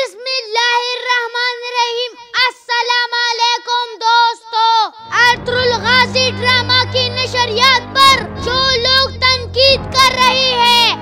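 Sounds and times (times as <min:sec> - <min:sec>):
boy declaiming into a microphone: 0:00.0 - 0:11.0.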